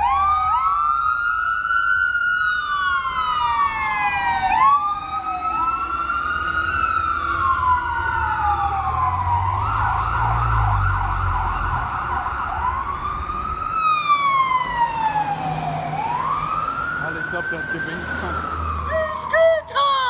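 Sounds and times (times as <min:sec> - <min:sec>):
fire engine siren wailing and yelping: 0:00.0 - 0:20.0
truck engine rumbling: 0:00.0 - 0:20.0.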